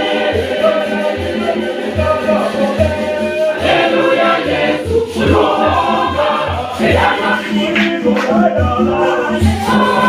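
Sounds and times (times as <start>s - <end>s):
conga drums: 0.0s - 10.0s
mixed choir singing: 0.0s - 10.0s.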